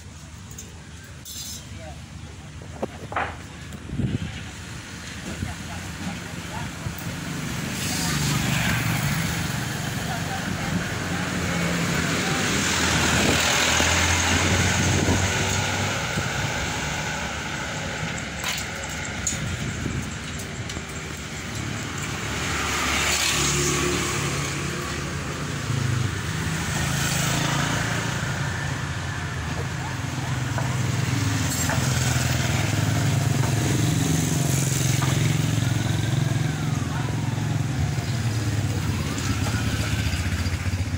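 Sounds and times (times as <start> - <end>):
motor vehicle engines passing: 0.0 - 40.9.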